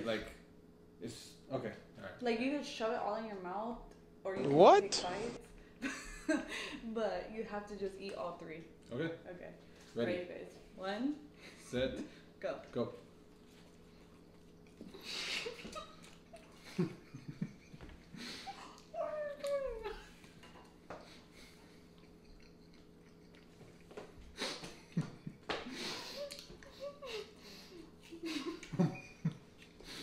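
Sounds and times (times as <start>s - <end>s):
people chewing marshmallows: 12.7s - 30.0s.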